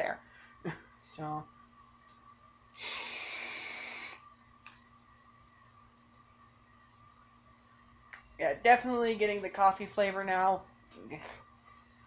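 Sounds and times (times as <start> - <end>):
vape drawing hiss: 2.8 - 4.2.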